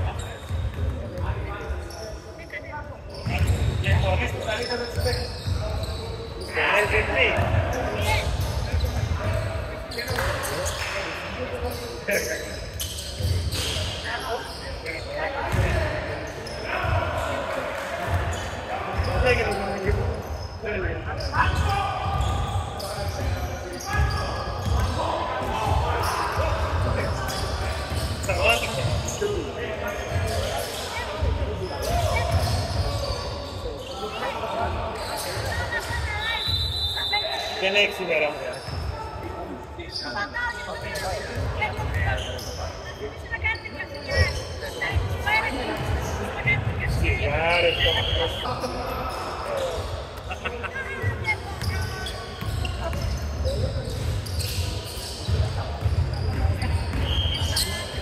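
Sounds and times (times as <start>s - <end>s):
sneakers squeaking: 0.0s - 58.0s
basketball bouncing: 15.5s - 15.8s, 55.2s - 57.1s.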